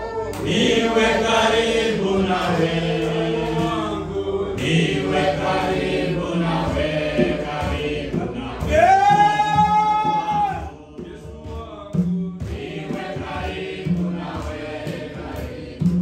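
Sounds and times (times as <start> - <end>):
group singing a slow hymn: 0.4 - 9.1, 10.6 - 16.0.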